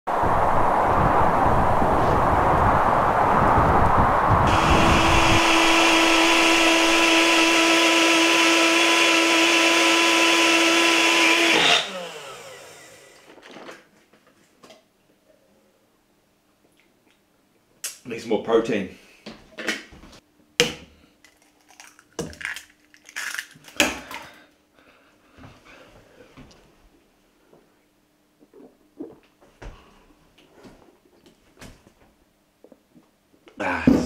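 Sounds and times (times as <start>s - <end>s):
blender running: 4.5s - 13.4s.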